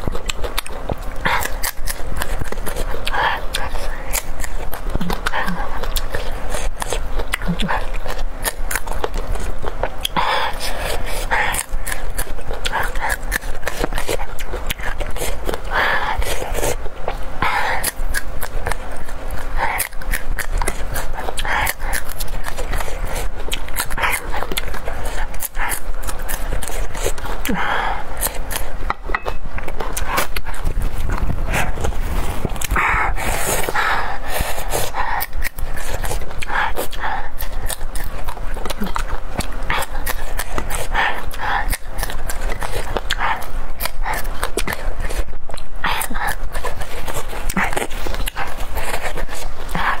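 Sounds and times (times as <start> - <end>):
crunching and chewing peppers: 0.0 - 50.0.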